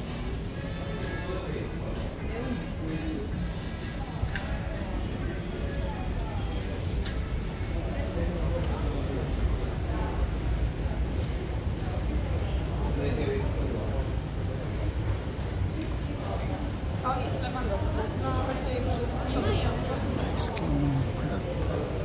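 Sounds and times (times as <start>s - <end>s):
background music: 0.0s - 5.0s
indistinct voices of shoppers: 0.0s - 22.0s.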